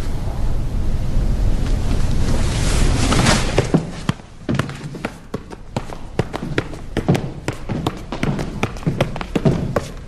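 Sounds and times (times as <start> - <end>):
loud rushing noise: 0.0 - 4.4
low rumble: 0.0 - 4.4.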